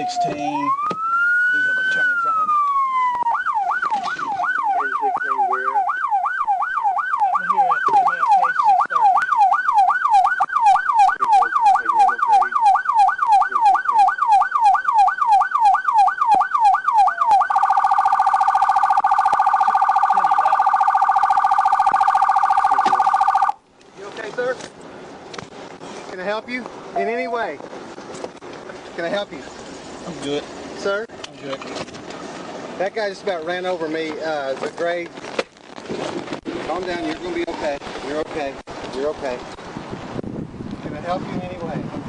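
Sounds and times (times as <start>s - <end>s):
police car siren: 0.0s - 23.6s.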